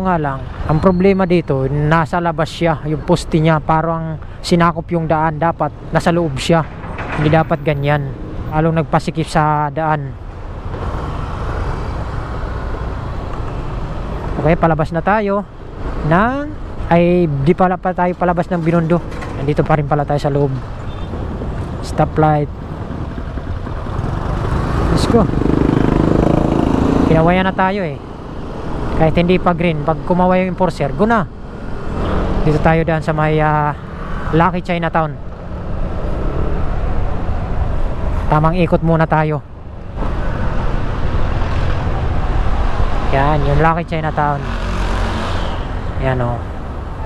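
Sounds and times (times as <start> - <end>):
city traffic: 0.0 - 47.0
road noise: 0.0 - 47.0.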